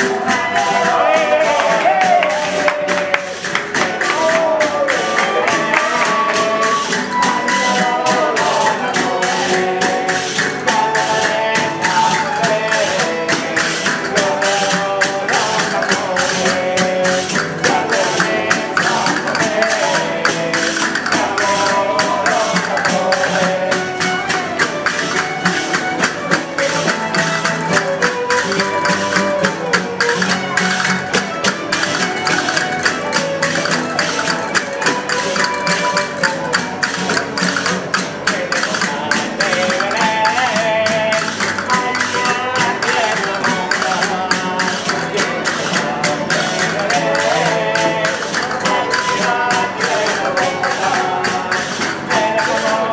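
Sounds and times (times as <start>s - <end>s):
fiddles playing tune: 0.0s - 52.9s
frame drum beat: 0.0s - 52.9s
strummed guitars: 0.0s - 52.9s.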